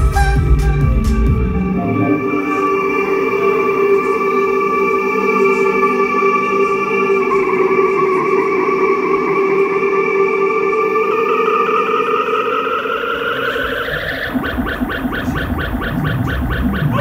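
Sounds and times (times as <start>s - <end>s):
low bass: 0.0s - 3.0s
sustained synth tones sliding upward: 0.0s - 17.0s
fast pulsing synth pattern: 13.2s - 17.0s.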